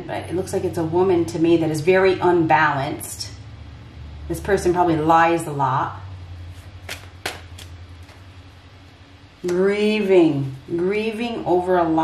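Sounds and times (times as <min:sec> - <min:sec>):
low steady hum: 0:00.0 - 0:12.0
card flicks: 0:06.8 - 0:08.2.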